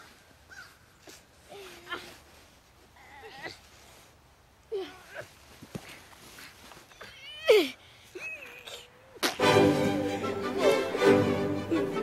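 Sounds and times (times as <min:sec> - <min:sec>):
faint rustling: 0:00.0 - 0:08.9
child whining cry: 0:06.9 - 0:09.2.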